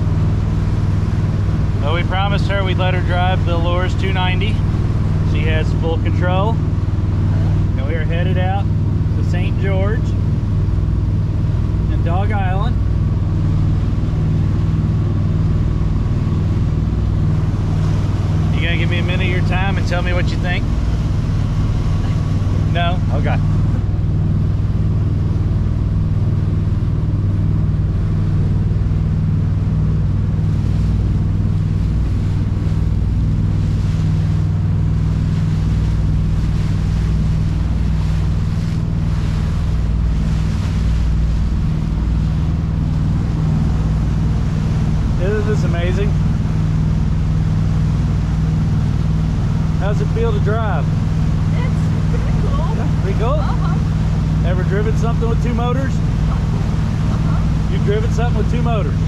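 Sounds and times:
motorboat engines droning: 0.0 - 59.0
water rushing past hull: 0.0 - 59.0.

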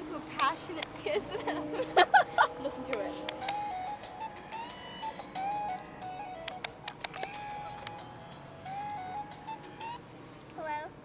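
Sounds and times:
phone ringtone melody: 3.4 - 10.1.

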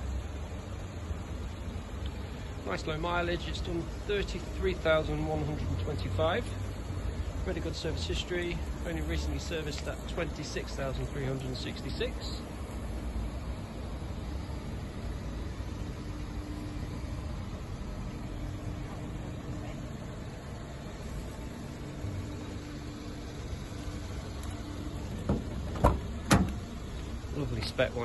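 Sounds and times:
low background rumble: 0.0 - 28.0
car door handle clicks: 25.1 - 26.6
car door opening knock: 25.1 - 26.6.

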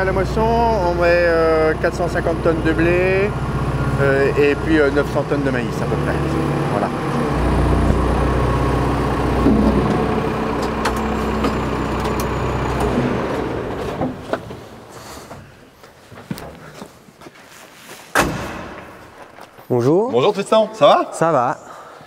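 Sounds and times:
diesel engine running: 0.0 - 15.6
cab door slamming: 18.2 - 19.0.

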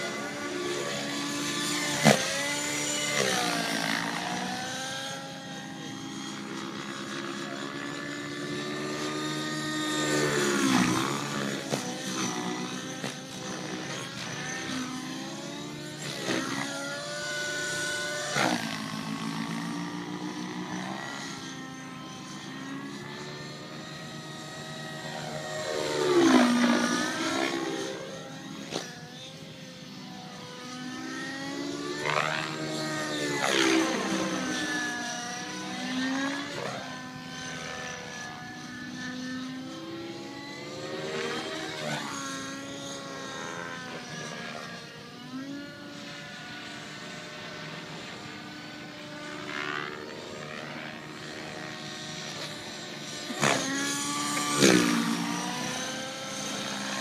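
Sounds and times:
model airplane engine flying overhead: 0.0 - 57.0.

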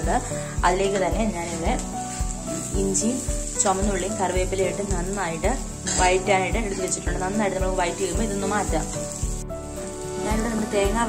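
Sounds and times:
background music: 0.0 - 11.0
food sizzling in hot oil: 0.0 - 11.0.

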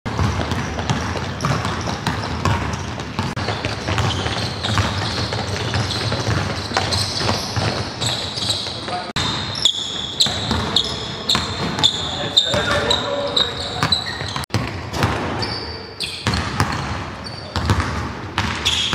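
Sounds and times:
basketballs bouncing on hardwood: 0.1 - 15.5, 16.2 - 18.9
sneakers squeaking on floor: 0.1 - 18.9.

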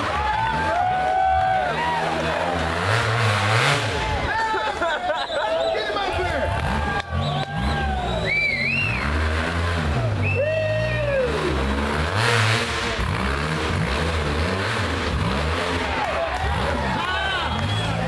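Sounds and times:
spectators shouting: 0.0 - 3.2, 3.8 - 9.0, 9.9 - 11.7, 15.6 - 18.0
engine revving: 0.0 - 4.3, 6.4 - 18.0.

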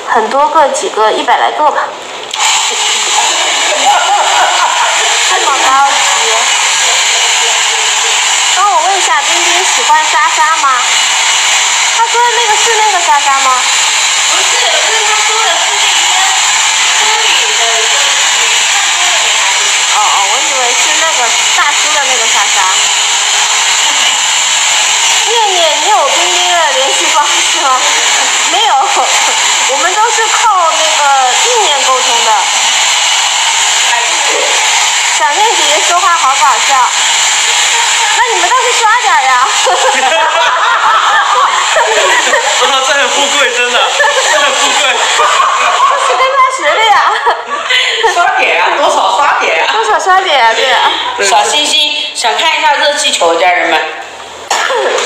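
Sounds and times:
hair dryer running: 0.0 - 55.0.

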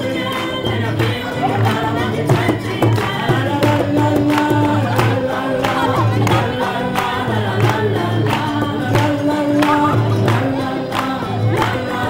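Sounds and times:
group singing: 0.0 - 12.0
hand drum beat: 0.0 - 12.0
strummed acoustic guitars: 0.0 - 12.0.

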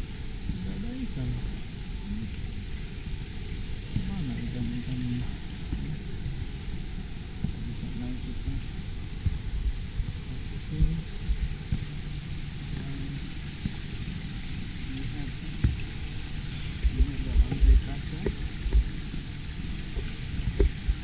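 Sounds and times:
low indoor rumble: 0.0 - 21.0
small fountain splashing: 0.0 - 21.0
faint voices: 3.8 - 6.2, 7.4 - 8.8, 10.2 - 11.5, 12.7 - 13.4, 14.7 - 15.8, 16.5 - 18.5.

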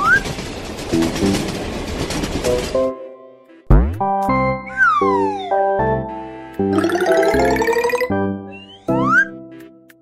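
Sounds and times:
cartoon train running noise: 0.0 - 2.9.

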